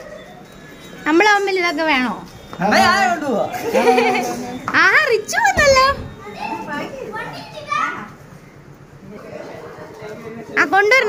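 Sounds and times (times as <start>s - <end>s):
children talking and calling out: 0.0s - 1.4s, 2.7s - 11.0s.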